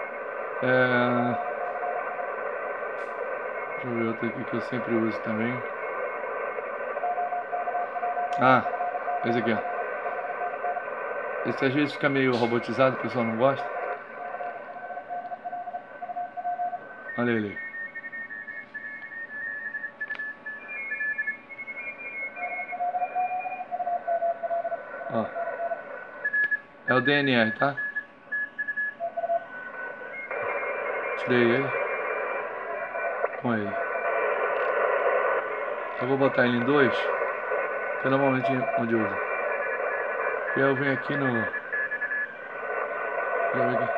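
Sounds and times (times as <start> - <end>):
radio band hiss: 0.0 - 43.9
steady whistle: 0.0 - 43.9
morse code tone: 35.1 - 43.9.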